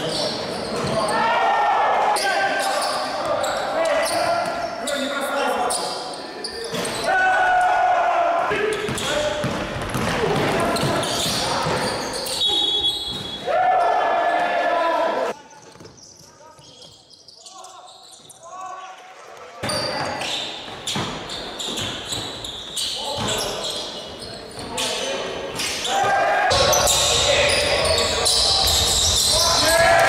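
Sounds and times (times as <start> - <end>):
basketball bouncing on wooden court: 8.8 - 12.0.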